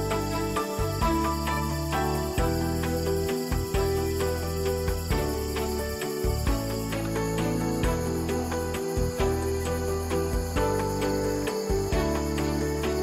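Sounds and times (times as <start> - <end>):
crickets chirping: 0.0 - 13.0
instrumental music with beat: 0.0 - 13.0.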